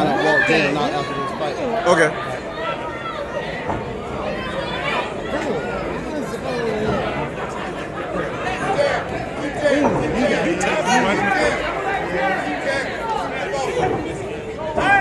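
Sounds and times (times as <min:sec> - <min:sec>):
crowd chatter and calling out: 0:00.0 - 0:15.0.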